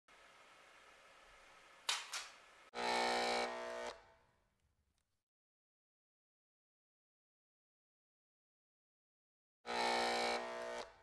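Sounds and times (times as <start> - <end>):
buzzy electronic tone: 2.8 - 4.0, 9.7 - 11.0.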